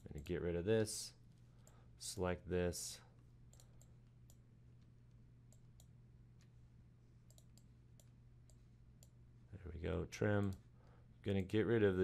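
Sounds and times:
low electrical hum: 0.0 - 12.0
computer mouse clicks: 3.5 - 4.4, 5.5 - 6.6, 7.3 - 9.2.

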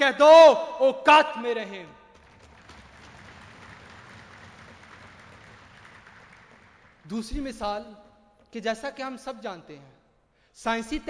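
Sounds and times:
audience applauding: 2.1 - 7.2.

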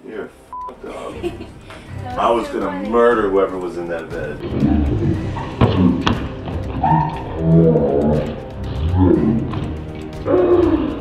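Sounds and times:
background music: 0.0 - 11.0
man laughing hard: 0.9 - 1.6.

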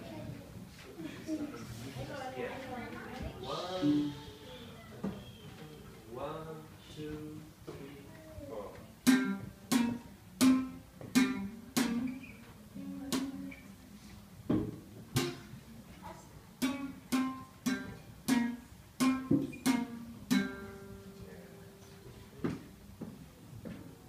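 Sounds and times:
classical guitar slow melody: 3.7 - 4.7, 9.0 - 14.0, 15.2 - 15.6, 16.6 - 22.0.

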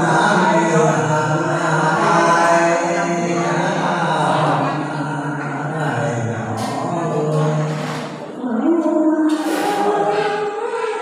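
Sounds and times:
woman singing unaccompanied: 6.8 - 11.0.

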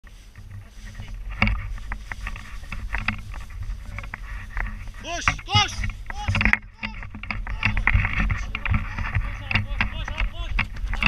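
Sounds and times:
wind rumbling on microphone: 0.0 - 11.0
harness and gear knocking: 0.5 - 11.0.

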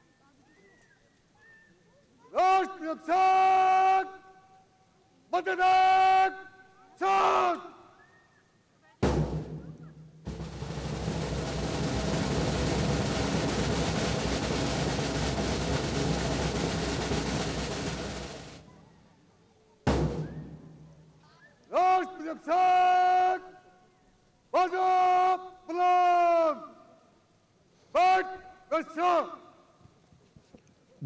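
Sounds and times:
drum roll: 9.0 - 19.0, 19.9 - 21.2.

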